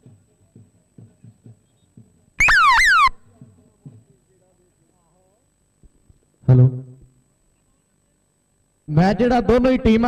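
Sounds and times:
faint low beats: 0.0s - 7.2s
high electronic tone dropping in pitch: 2.4s - 3.2s.

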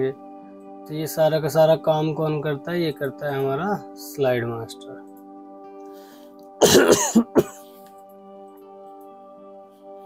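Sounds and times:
quiet background music: 0.0s - 10.0s
man coughing: 6.6s - 7.7s.

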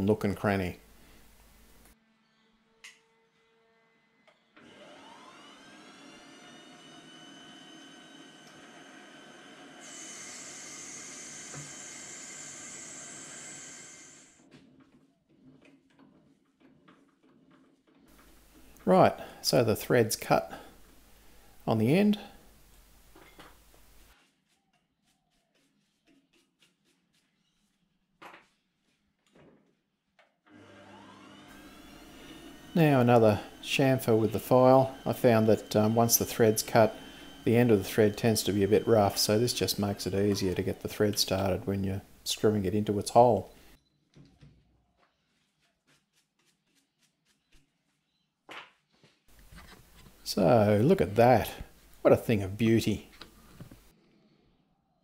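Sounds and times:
lathe motor humming: 4.6s - 14.4s, 30.5s - 40.8s.

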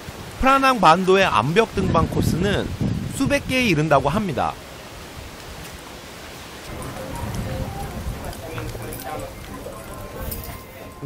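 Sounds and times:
indistinct voices talking: 6.7s - 11.0s.

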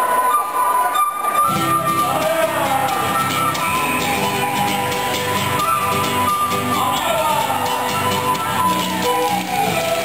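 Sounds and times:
folk band playing dance music: 0.0s - 10.0s
guitar: 0.0s - 10.0s.

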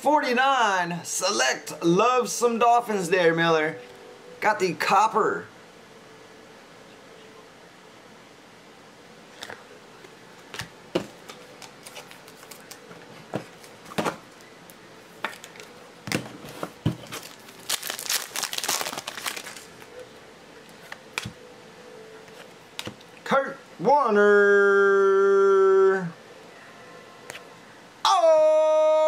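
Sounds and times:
plastic crinkling: 10.6s - 14.5s, 15.2s - 20.0s.

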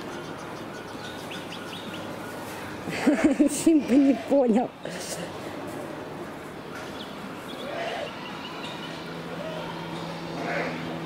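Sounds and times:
steady low background noise: 0.0s - 11.0s.

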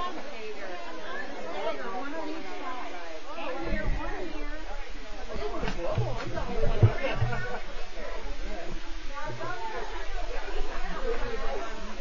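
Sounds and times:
indistinct group chatter: 0.0s - 12.0s.

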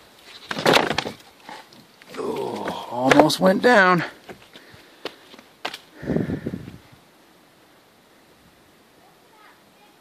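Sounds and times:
low scuffing rustle: 0.0s - 5.9s
faint outdoor background: 0.0s - 10.0s.

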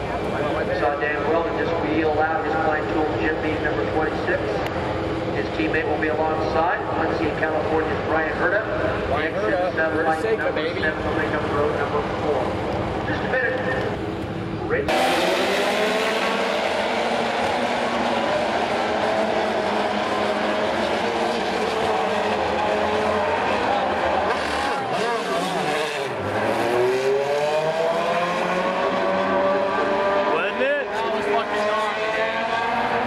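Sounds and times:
race car engines at high revs: 0.0s - 33.0s.

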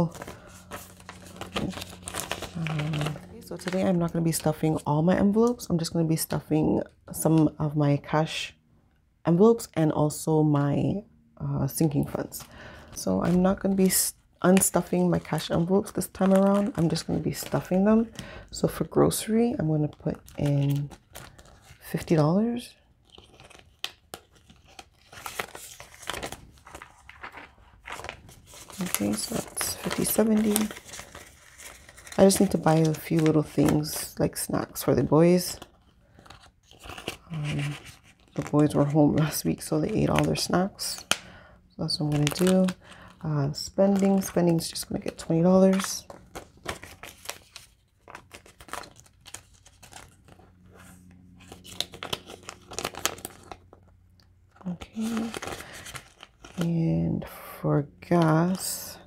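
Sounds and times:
plastic banknotes crinkling: 0.0s - 5.8s, 12.0s - 57.3s.

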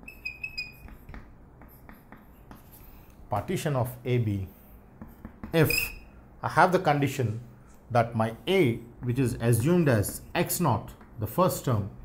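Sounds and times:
chalk scratching on chalkboard: 0.0s - 3.1s.

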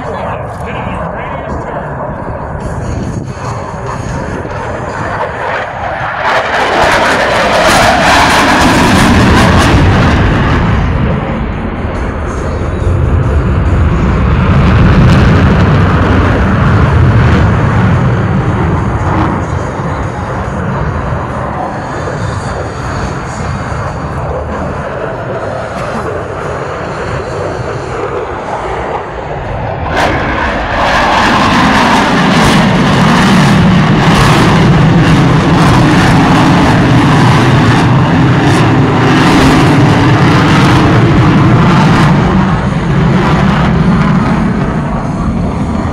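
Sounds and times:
fighter jet engine roar: 0.0s - 45.9s.

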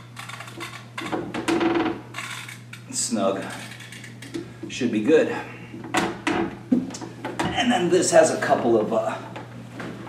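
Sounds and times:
plastic threads grating and clicking: 0.0s - 2.8s, 3.4s - 4.4s.

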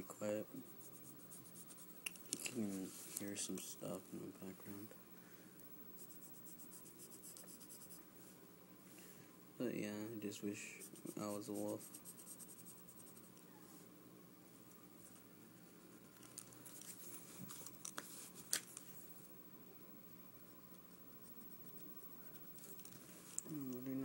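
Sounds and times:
low steady hum: 0.0s - 24.0s
pencil scratching on paper: 0.6s - 2.0s, 6.0s - 8.0s, 10.7s - 13.3s.

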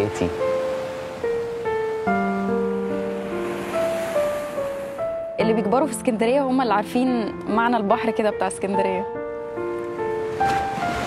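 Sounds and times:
slow keyboard music: 0.0s - 11.0s
waves breaking on concrete: 10.2s - 11.0s.

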